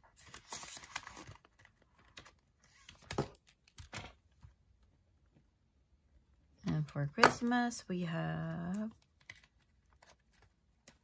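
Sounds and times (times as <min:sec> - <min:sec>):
plastic binder pocket rustling: 0:00.1 - 0:04.2.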